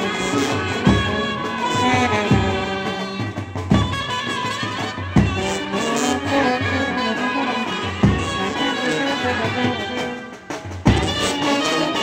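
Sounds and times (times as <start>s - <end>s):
trumpets playing a melody: 0.0s - 12.0s.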